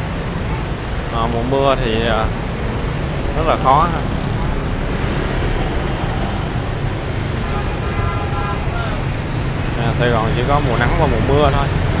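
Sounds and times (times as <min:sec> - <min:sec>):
cars passing: 0:00.0 - 0:12.0
motorbikes passing: 0:00.0 - 0:12.0.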